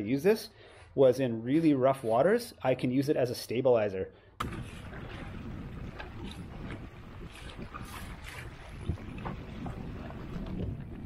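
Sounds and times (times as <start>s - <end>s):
short water splashes: 4.4s - 11.0s
water washing against hull: 4.4s - 11.0s
wind rumbling on microphone: 4.4s - 11.0s.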